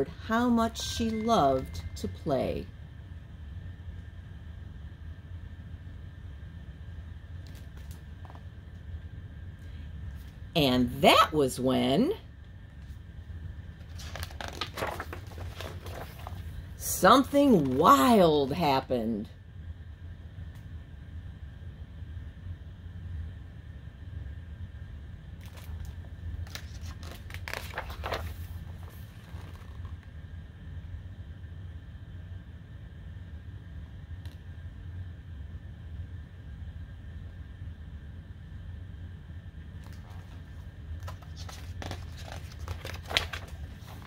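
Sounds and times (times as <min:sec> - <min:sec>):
steady low hum: 0:00.0 - 0:44.0
book pages turning: 0:13.8 - 0:16.6, 0:25.4 - 0:30.1, 0:39.8 - 0:44.0
papery rustle: 0:13.8 - 0:16.6, 0:25.4 - 0:30.0, 0:39.8 - 0:44.0.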